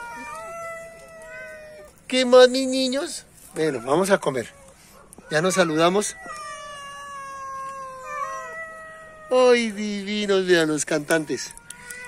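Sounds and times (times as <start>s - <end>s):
cats meowing: 0.0s - 12.0s.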